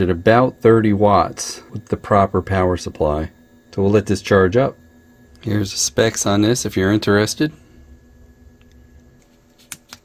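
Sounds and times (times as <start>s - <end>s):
quiet room hum: 0.0s - 10.0s.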